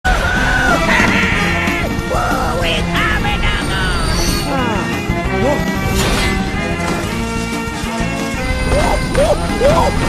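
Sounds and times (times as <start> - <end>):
loud film music: 0.1 - 10.0.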